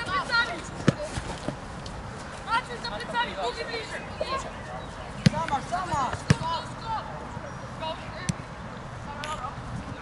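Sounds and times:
young players calling out: 0.0s - 1.1s, 2.4s - 9.6s.

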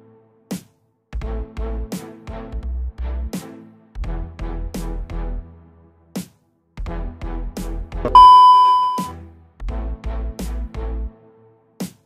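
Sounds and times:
high-pitched test-pattern beep: 8.1s - 9.1s.

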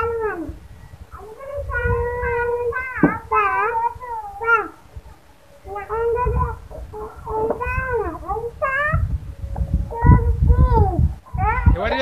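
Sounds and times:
child whining cries: 0.0s - 0.6s, 1.2s - 4.8s, 5.6s - 9.0s.

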